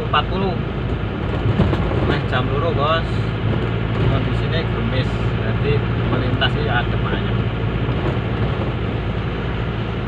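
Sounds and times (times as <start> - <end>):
car engine drone: 0.0 - 10.0.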